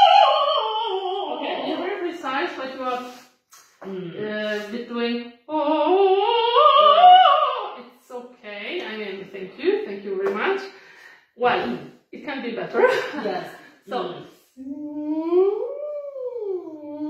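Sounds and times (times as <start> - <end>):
woman singing vocal sirens: 0.0 - 2.2, 5.5 - 7.8.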